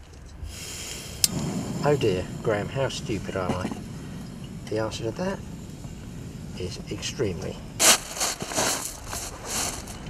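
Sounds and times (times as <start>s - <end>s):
flame rushing: 0.1s - 10.0s
gas hissing from stove burner: 0.4s - 10.0s.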